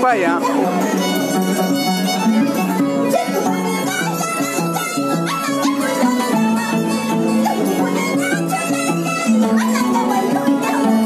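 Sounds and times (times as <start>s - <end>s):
harp plucking bass and chords: 0.0s - 11.0s
violin melody: 0.0s - 11.0s.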